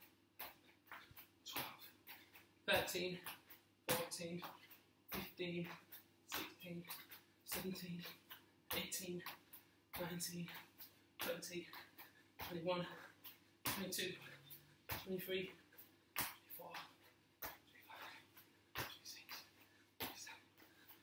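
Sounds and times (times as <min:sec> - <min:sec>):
jump landings on tiled floor: 0:10.0 - 0:14.2.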